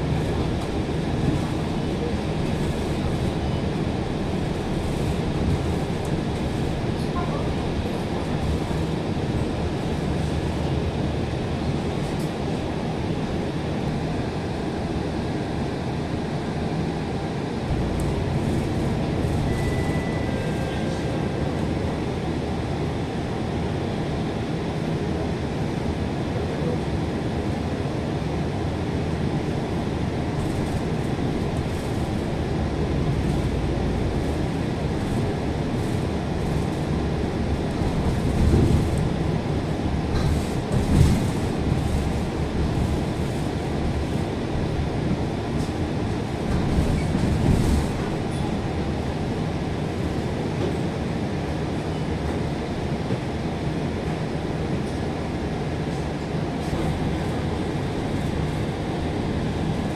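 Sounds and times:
bus engine and road rumble: 0:00.0 - 0:59.9
faint high beep: 0:19.4 - 0:21.1.

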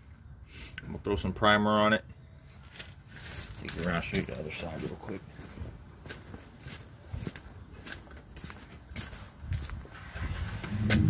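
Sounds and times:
footsteps on concrete: 0:02.6 - 0:09.9.

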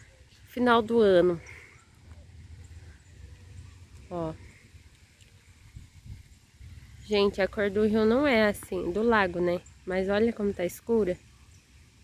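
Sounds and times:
wind buffeting microphone: 0:02.3 - 0:09.8.

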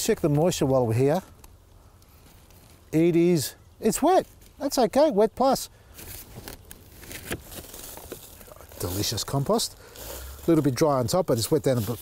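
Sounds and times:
compost scooped by hand: 0:05.9 - 0:12.0.

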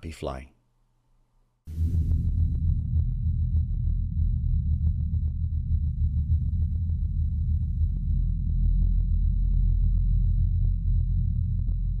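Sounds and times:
deep rumbling drone: 0:01.7 - 0:12.0.

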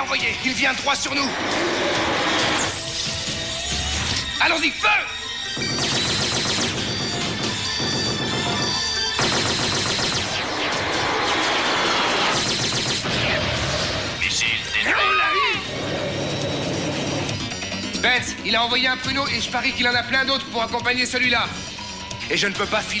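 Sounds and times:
background music: 0:00.0 - 0:23.0
rapid automatic gunfire: 0:05.6 - 0:14.0.

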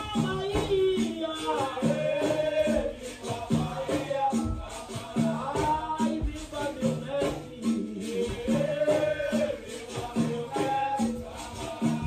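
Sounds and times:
rattling percussion: 0:00.0 - 0:12.0.

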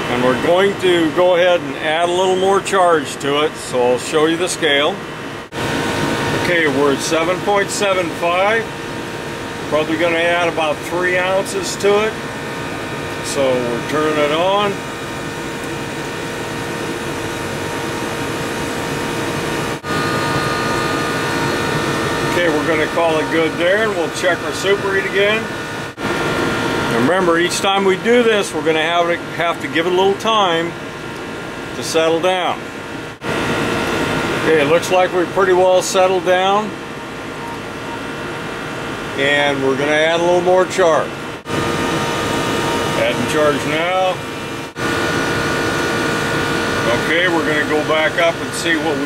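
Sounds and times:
air conditioner running: 0:00.0 - 0:49.0.

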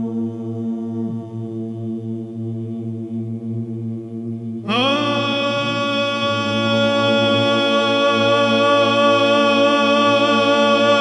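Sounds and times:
solo chanting voice: 0:00.0 - 0:03.5, 0:04.1 - 0:11.0
low vocal drone: 0:00.0 - 0:11.0.

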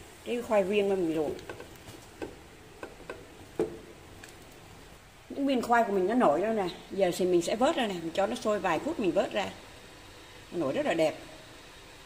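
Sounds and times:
boiling water hiss: 0:00.0 - 0:12.0.

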